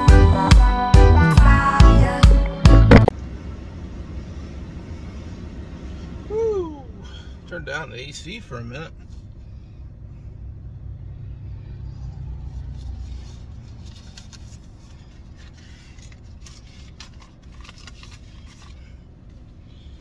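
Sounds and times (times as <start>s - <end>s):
low vehicle rumble: 1.0s - 20.0s
paper rustling: 12.6s - 19.0s.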